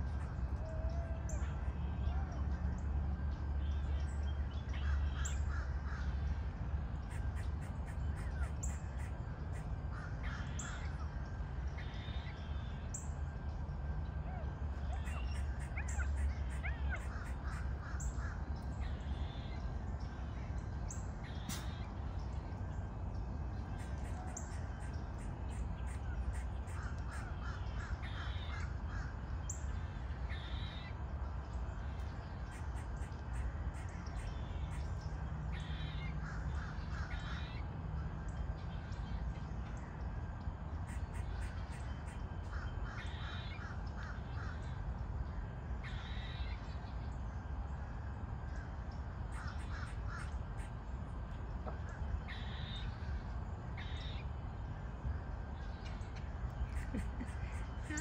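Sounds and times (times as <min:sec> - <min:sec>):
birds calling: 0:00.0 - 0:47.8, 0:48.4 - 0:58.0
steady low rumble: 0:00.0 - 0:58.0
crows cawing: 0:04.8 - 0:06.4, 0:07.1 - 0:12.2, 0:15.0 - 0:19.6, 0:25.8 - 0:29.3, 0:35.5 - 0:37.6, 0:40.9 - 0:44.8, 0:48.5 - 0:50.7.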